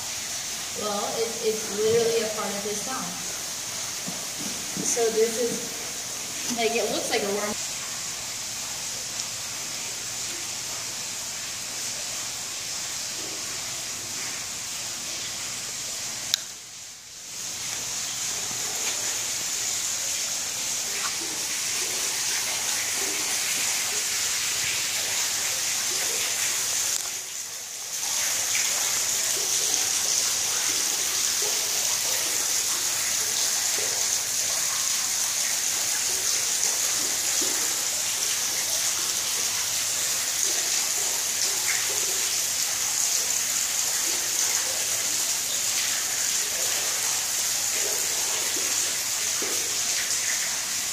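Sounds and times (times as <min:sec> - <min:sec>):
running water rushing: 0:00.0 - 0:50.9.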